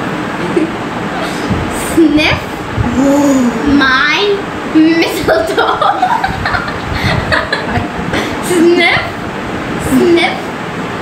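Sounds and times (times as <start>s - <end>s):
girls giggling: 5.8s - 8.4s.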